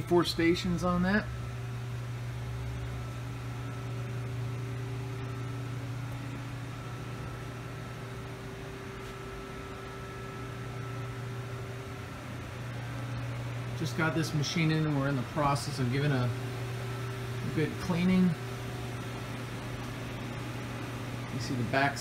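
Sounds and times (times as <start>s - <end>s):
low hum of machinery: 0.0s - 22.0s.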